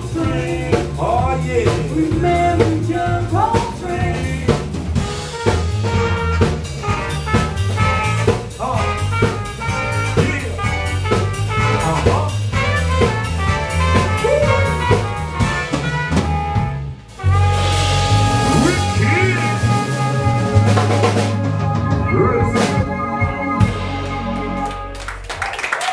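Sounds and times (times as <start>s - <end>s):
bass line: 0.0s - 25.6s
drum kit beat with rimshots: 0.0s - 25.9s
trumpet playing: 5.0s - 25.5s.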